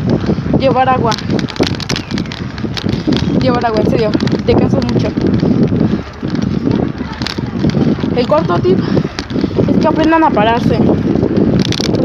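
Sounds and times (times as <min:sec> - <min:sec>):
bicycle clicks and knocks: 0:00.0 - 0:12.0
wind buffeting microphone: 0:00.0 - 0:12.0.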